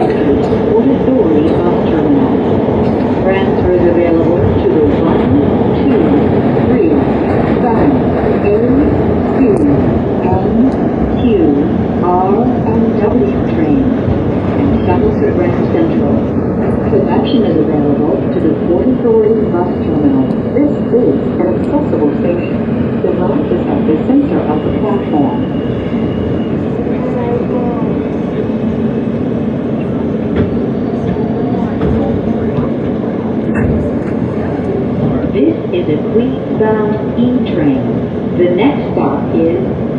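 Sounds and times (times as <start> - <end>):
subway train wheels rumbling: 0.0 - 39.9.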